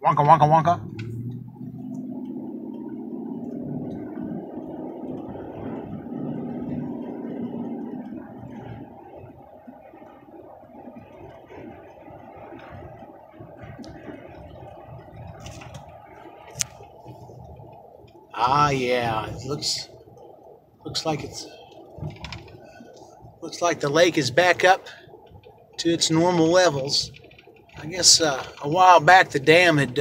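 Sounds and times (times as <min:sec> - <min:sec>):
truck engine and tyres rumbling: 0:00.0 - 0:30.0.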